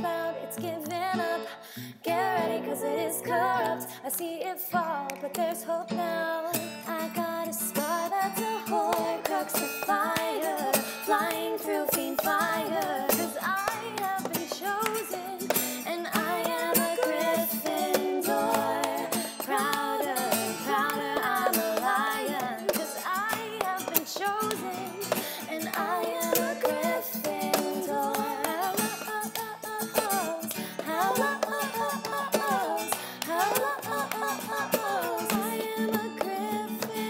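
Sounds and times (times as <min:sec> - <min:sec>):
strummed acoustic guitar: 0:00.0 - 0:37.0
women singing pop chorus: 0:00.0 - 0:37.0.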